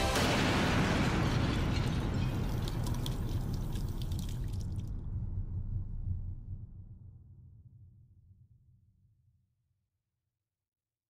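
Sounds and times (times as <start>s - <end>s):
low rumble: 0.0s - 8.8s.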